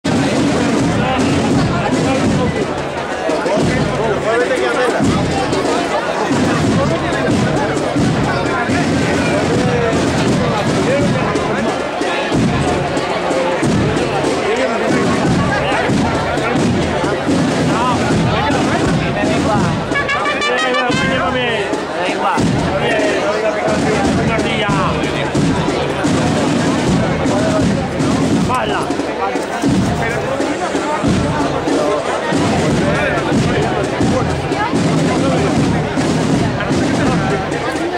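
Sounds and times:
brass marching band playing: 0.0 - 37.9
people talking nearby: 0.0 - 37.9.

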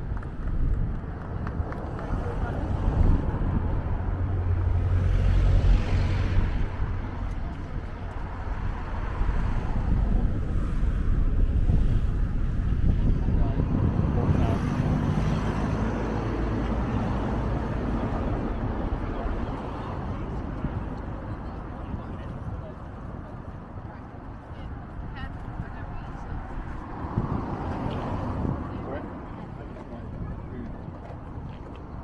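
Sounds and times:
road traffic passing: 0.0 - 32.0
wind buffeting microphone: 0.0 - 32.0.

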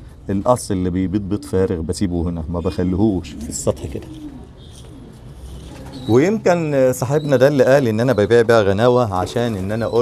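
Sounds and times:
pigeons cooing: 1.0 - 10.0.

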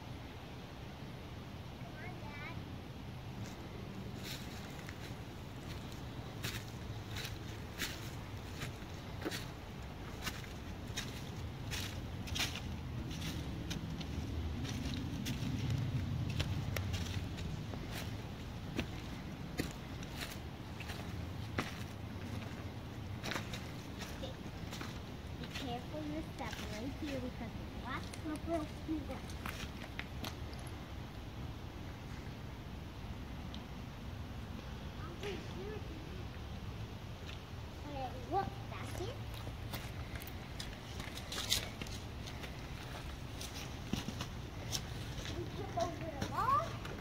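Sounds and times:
low steady rumble: 0.0 - 47.0
footsteps on dry leaves: 3.4 - 30.2, 38.3 - 47.0.

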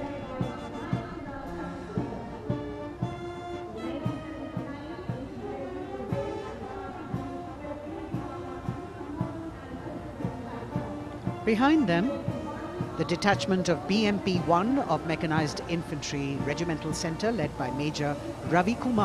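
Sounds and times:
marching band music: 0.3 - 4.7.

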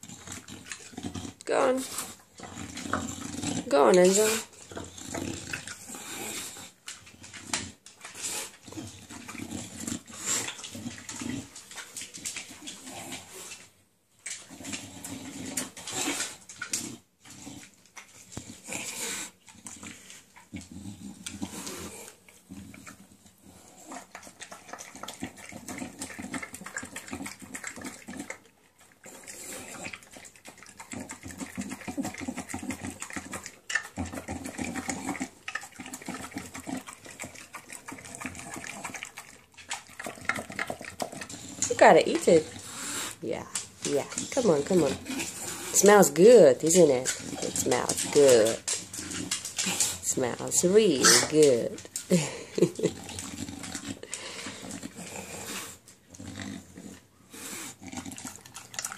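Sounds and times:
dog chewing and slurping: 0.0 - 58.9.

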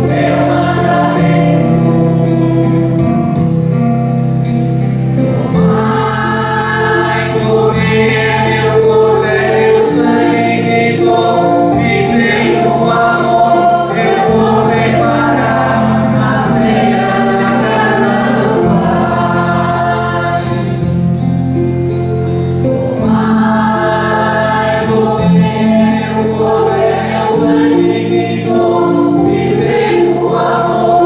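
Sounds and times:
voices singing a hymn: 0.0 - 3.6, 5.1 - 31.0.

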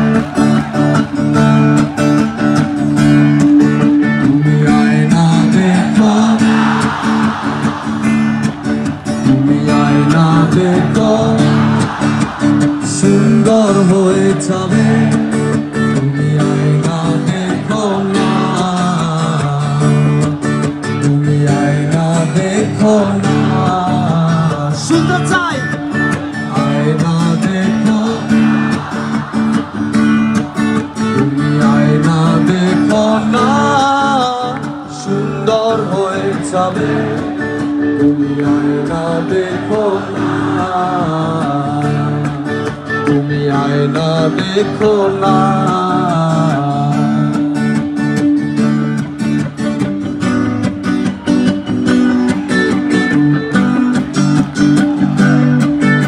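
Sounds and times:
live rock band playing: 0.0 - 56.0
person singing: 2.3 - 47.9.

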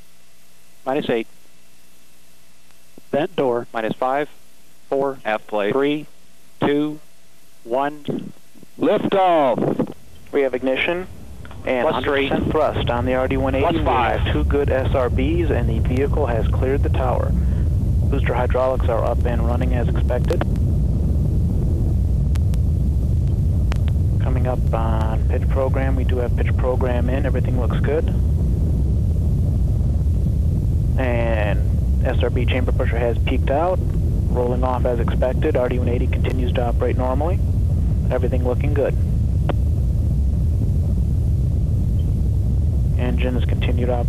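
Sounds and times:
rocket engine rumble: 3.0 - 4.3, 4.9 - 7.0, 7.6 - 44.0
faint clicks: 23.2 - 24.0.

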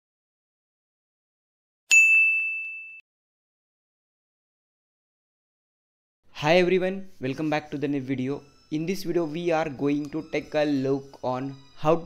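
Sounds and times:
bright bell ding: 1.9 - 3.0.

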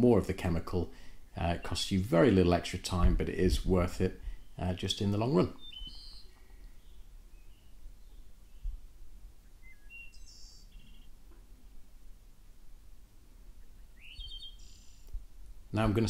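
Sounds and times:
faint bird chirps: 4.3 - 4.6, 5.5 - 11.4, 13.5 - 15.2.

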